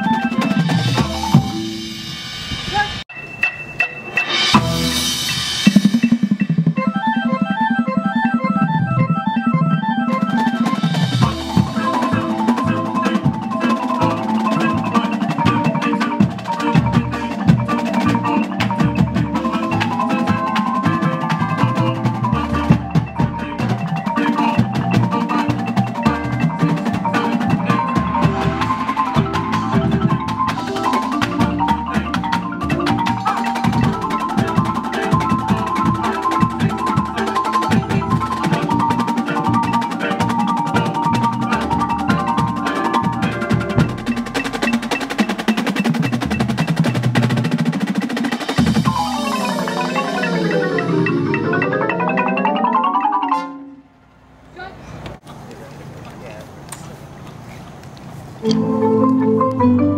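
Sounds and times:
marimbas and mallet percussion playing: 0.0s - 53.9s, 58.4s - 59.9s.

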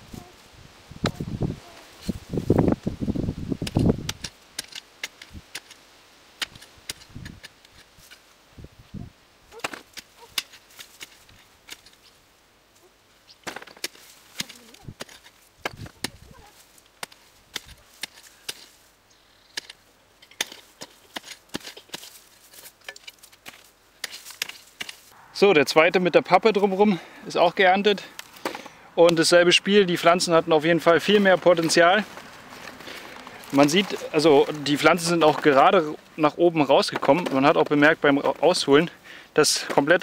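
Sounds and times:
clicks of clods and stones: 3.6s - 5.8s, 6.4s - 8.3s, 9.5s - 12.2s, 13.3s - 18.9s, 19.5s - 25.2s
hoe chopping and scraping soil: 3.6s - 8.3s, 9.5s - 12.2s, 13.3s - 18.9s, 19.5s - 25.2s, 28.2s - 29.2s, 30.9s - 36.0s, 36.8s - 38.6s, 39.5s - 40.0s.

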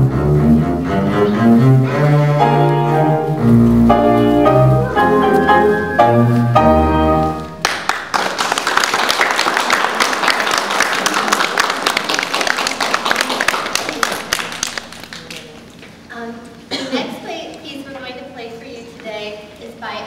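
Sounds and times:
piano and bass waltz: 0.0s - 7.6s
audience clapping: 7.3s - 15.7s.

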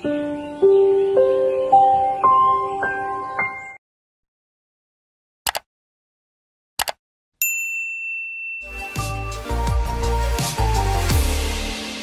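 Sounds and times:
bright chime ringing: 7.4s - 9.6s
music with deep bass: 8.7s - 12.0s.

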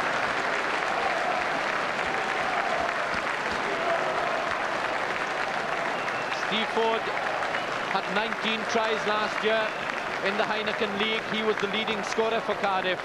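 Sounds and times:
stadium crowd applauding: 0.0s - 13.0s.

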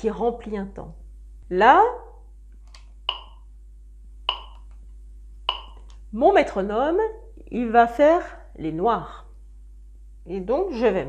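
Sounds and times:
electronic metronome beeps: 3.1s - 3.5s, 4.3s - 4.6s, 5.5s - 5.8s.

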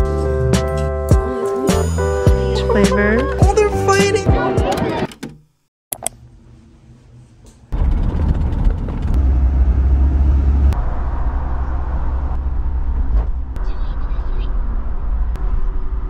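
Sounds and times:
car cabin road rumble: 7.5s - 16.0s.

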